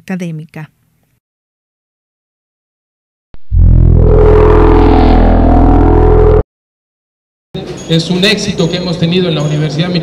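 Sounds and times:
droning synthesised chord: 3.5s - 6.4s.

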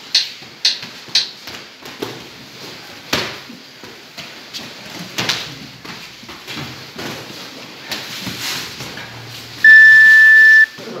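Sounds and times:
round timer beep: 9.6s - 10.8s.

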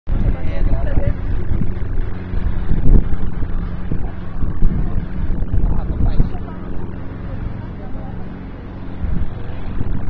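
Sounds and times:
wind rumbling on microphone: 0.1s - 10.0s
people talking indistinctly: 0.2s - 9.8s.

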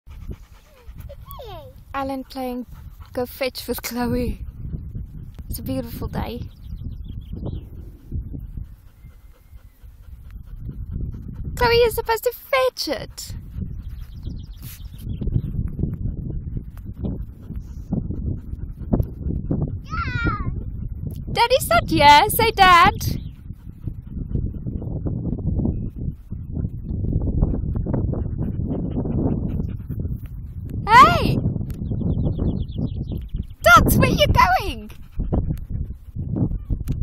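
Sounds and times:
dog panting: 0.1s - 19.9s, 20.5s - 37.0s
wind on microphone: 0.1s - 37.0s
low rumble: 4.2s - 11.6s.

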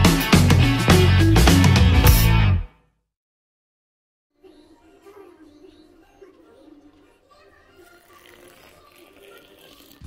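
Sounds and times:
milk pouring into a mug: 7.6s - 10.0s.

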